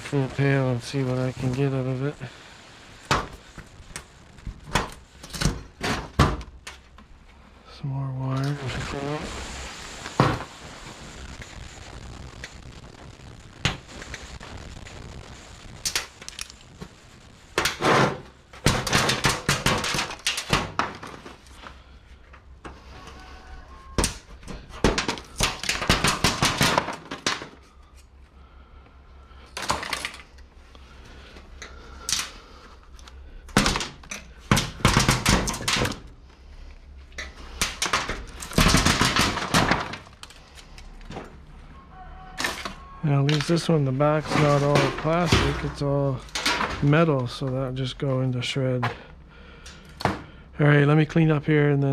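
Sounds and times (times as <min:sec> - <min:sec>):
metal and plastic parts clattering: 0:29.6 - 0:30.4, 0:44.2 - 0:46.8.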